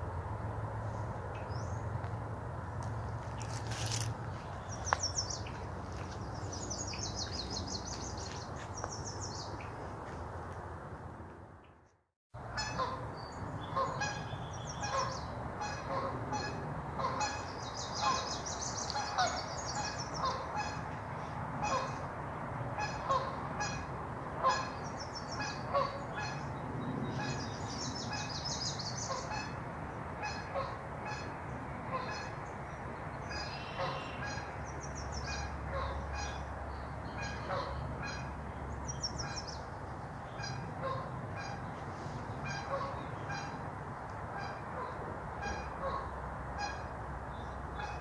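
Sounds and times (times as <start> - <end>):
songbirds chirping and trilling: 2.8 - 10.1, 11.6 - 48.0
geese honking: 12.5 - 13.0, 13.7 - 21.0, 21.6 - 22.0, 22.8 - 26.5, 33.3 - 34.5, 35.2 - 36.5, 37.1 - 38.3, 40.3 - 41.7, 42.4 - 43.6.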